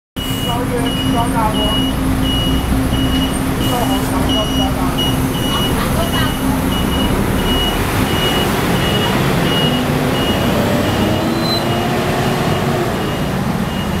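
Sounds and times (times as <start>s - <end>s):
high electronic beep: 0.2s - 11.9s, 12.5s - 14.0s
bus engine revving: 0.2s - 14.0s
busy street traffic: 0.2s - 14.0s.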